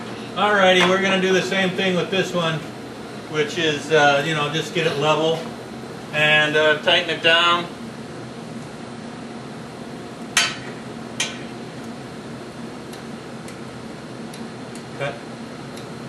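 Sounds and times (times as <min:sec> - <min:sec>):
ventilation hum: 0:00.0 - 0:16.0.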